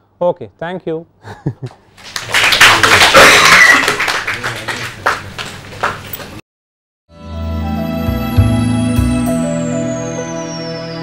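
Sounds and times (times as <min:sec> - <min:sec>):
audience applauding: 0:02.0 - 0:06.2.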